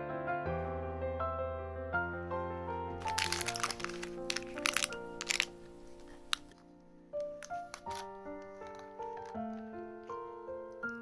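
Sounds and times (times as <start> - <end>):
soft piano music: 0.0 - 11.0.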